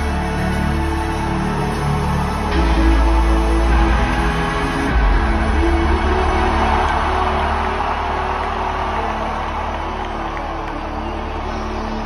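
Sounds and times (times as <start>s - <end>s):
crowd cheering and whooping: 0.0s - 12.0s
electronic music with deep bass: 0.0s - 12.0s.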